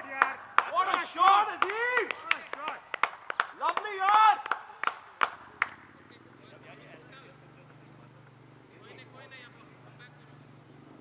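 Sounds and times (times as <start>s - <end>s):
people shouting calls: 0.0s - 5.6s
sharp hand claps: 0.0s - 5.9s.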